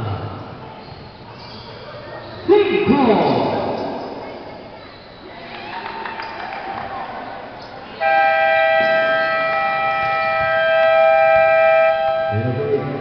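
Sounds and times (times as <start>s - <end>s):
gym crowd noise and voices: 0.0s - 13.0s
scoreboard buzzer tone: 8.0s - 12.6s.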